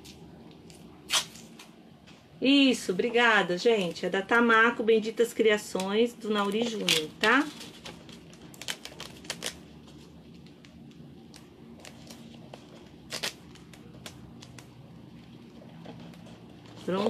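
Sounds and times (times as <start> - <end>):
steady low hum: 0.0 - 17.0
plastic stencil rustling: 5.6 - 17.0.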